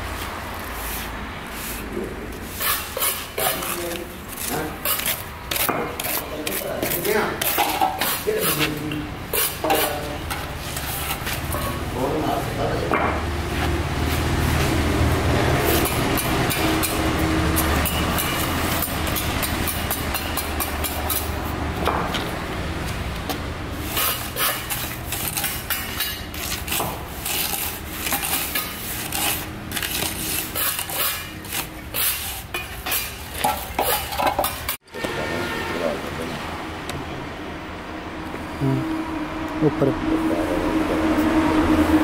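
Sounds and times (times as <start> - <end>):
hand float scraping wet mortar: 0.6 - 11.6, 23.8 - 34.7.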